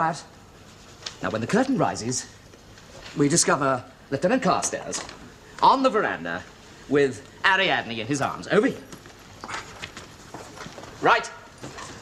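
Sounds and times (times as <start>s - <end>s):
footsteps on hard floor: 8.8s - 12.0s.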